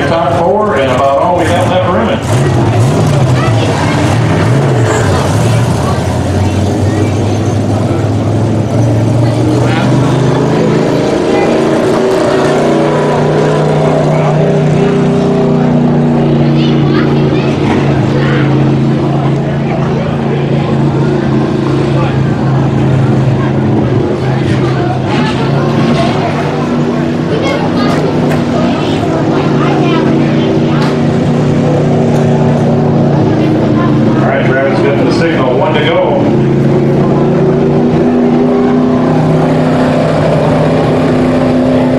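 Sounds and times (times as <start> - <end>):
race car engines droning: 0.0 - 41.9.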